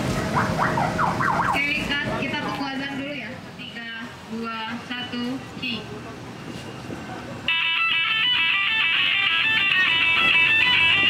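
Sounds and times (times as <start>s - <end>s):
voices: 1.4s - 7.5s.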